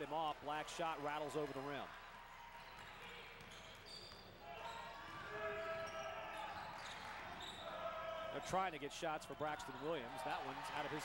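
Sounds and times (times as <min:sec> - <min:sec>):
crowd noise: 0:04.5 - 0:11.0.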